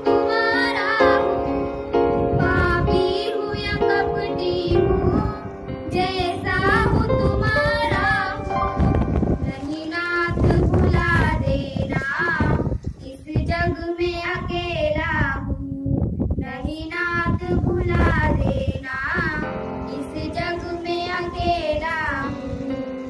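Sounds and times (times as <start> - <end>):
girls singing into a microphone: 0.0 - 16.1, 16.7 - 23.0.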